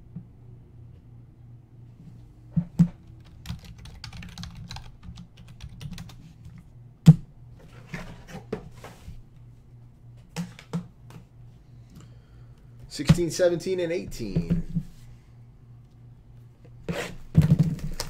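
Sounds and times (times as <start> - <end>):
faint steady hum: 0.0 - 18.0
computer keyboard typing: 3.2 - 6.6.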